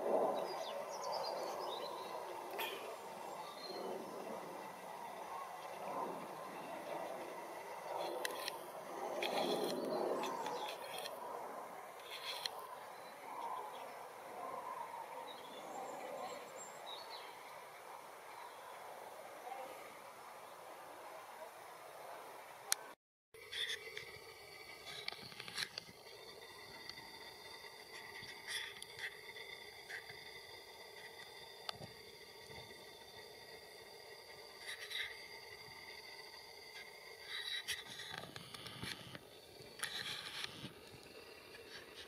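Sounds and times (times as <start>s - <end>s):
cranes calling: 0.0s - 16.5s, 24.8s - 40.7s
steady background noise: 0.0s - 42.0s.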